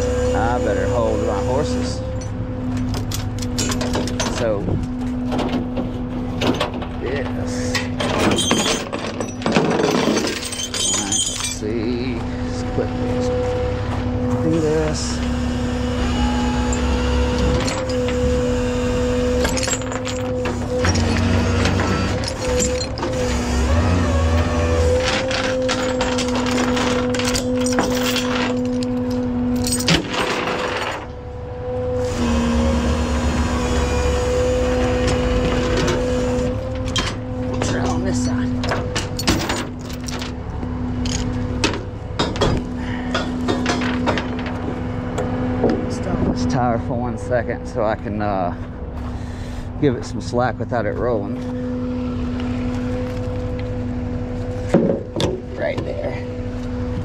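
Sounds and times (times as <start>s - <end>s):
hydraulics whining: 0.0s - 57.0s
truck engine running: 0.0s - 57.0s
metal knocks: 41.0s - 45.8s.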